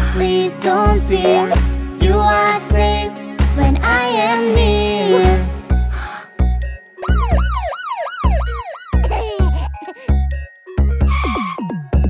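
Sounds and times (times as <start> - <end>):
children's music with bass drum: 0.0 - 12.0
cartoon police siren wail: 7.0 - 9.5.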